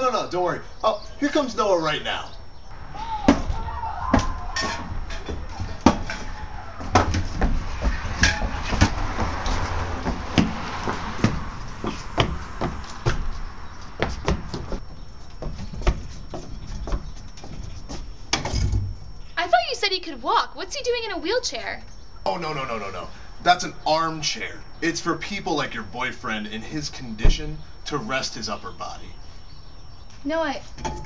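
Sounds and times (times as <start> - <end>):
low rolling rumble: 1.6 - 15.2
wheelchair knocking on wooden boards: 3.3 - 18.9.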